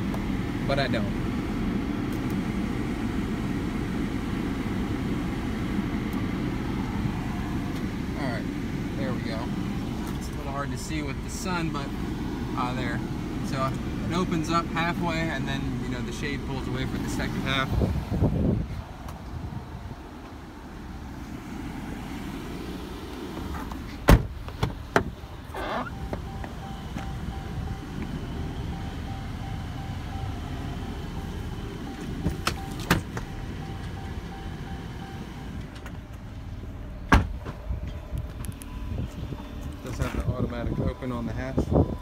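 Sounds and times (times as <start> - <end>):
wind rumbling on microphone: 17.7 - 20.1, 37.2 - 42.0
car doors and latches clicking: 23.5 - 27.0.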